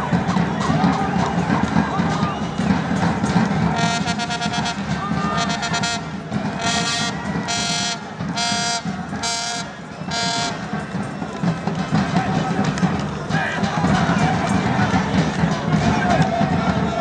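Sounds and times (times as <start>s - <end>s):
stadium crowd noise: 0.0s - 17.0s
horn short blasts: 3.7s - 10.9s.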